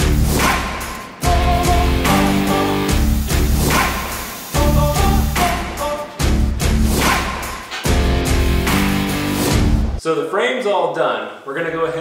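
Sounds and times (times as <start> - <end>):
heavy bass beat: 0.0 - 10.0.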